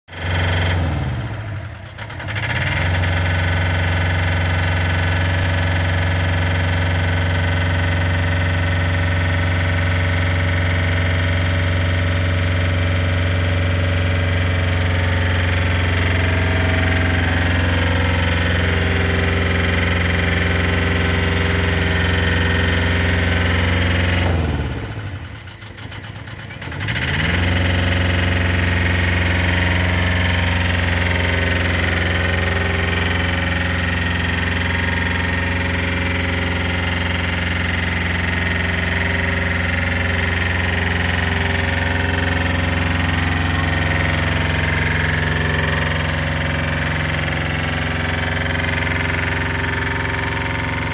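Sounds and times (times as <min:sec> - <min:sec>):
diesel engine running: 0:00.1 - 0:50.9.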